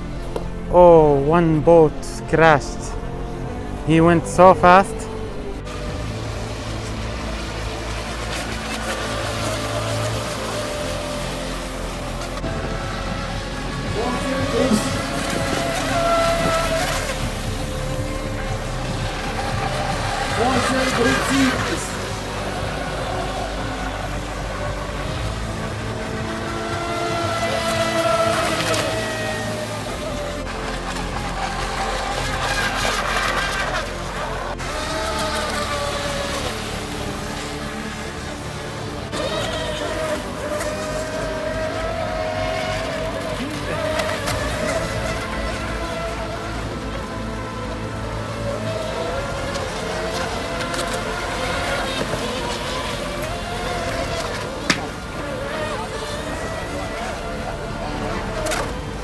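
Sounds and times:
low even rumble: 0.0s - 59.0s
rc boat motor whine: 0.0s - 59.0s
person speaking: 0.4s - 5.7s, 13.9s - 17.2s, 20.0s - 22.6s.

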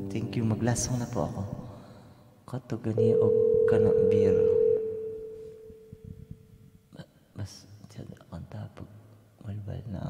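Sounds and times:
steady pure tone: 3.0s - 6.5s.

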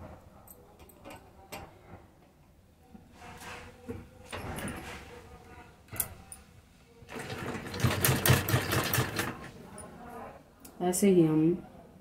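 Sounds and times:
sewing machine stitching: 7.1s - 9.5s.

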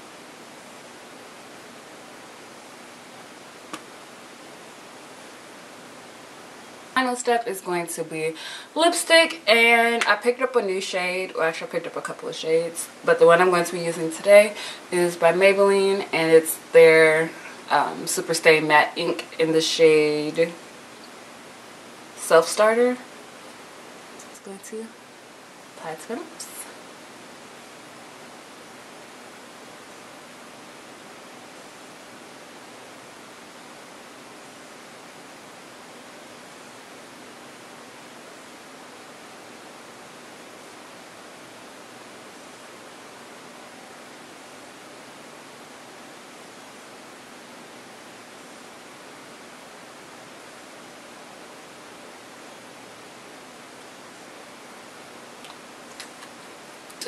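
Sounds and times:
steady background hiss: 0.0s - 57.0s.

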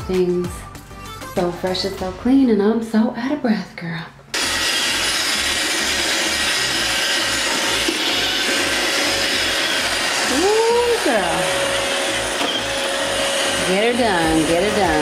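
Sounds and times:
robot vacuum whirring: 4.4s - 15.0s.

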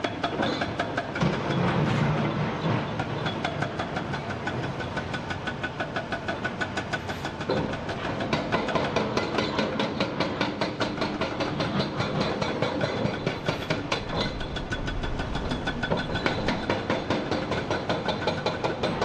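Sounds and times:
hydraulic rock breaker hammering rock: 0.0s - 19.0s.

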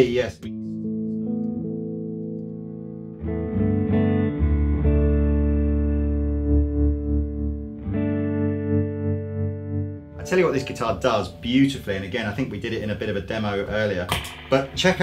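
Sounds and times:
electric guitar chords and notes: 0.0s - 15.0s.

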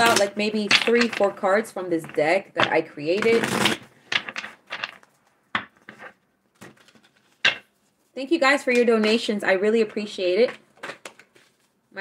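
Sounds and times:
cards shuffled on a table: 3.4s - 7.6s.

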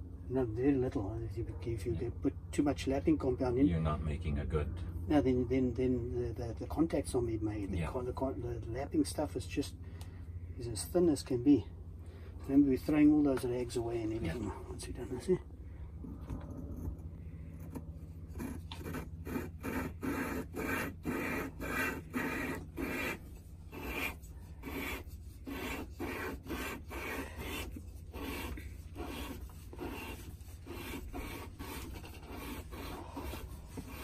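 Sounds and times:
gritty metal-on-metal rasping: 16.0s - 34.0s.

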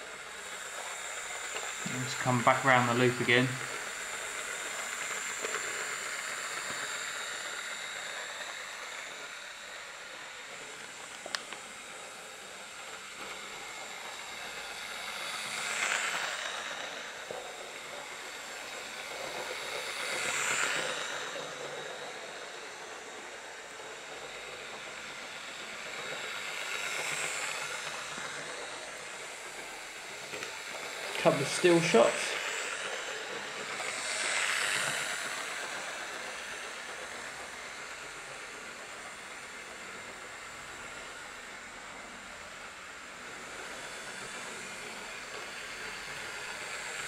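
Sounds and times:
model train motor whirring: 0.0s - 47.0s.

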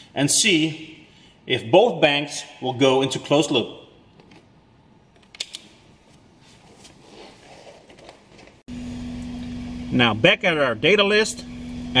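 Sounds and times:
handling noise: 4.1s - 8.7s
steady hum over low rumble: 8.7s - 12.0s.

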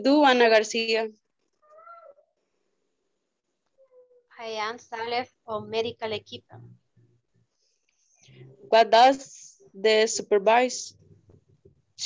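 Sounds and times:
cat meowing: 1.6s - 2.3s.

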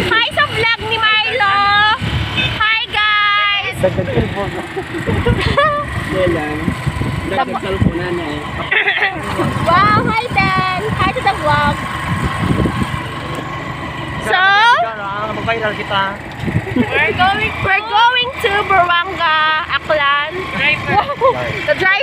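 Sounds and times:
people talking and calling out: 0.0s - 22.0s
vehicle engine and road rumble: 0.0s - 22.0s.

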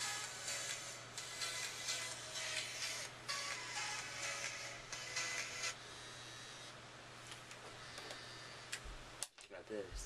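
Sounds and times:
tinny music from headphones: 0.0s - 10.0s.

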